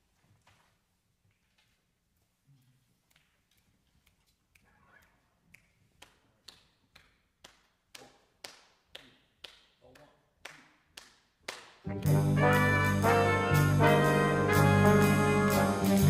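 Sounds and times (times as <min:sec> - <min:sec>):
big band brass section: 0:11.9 - 0:16.0.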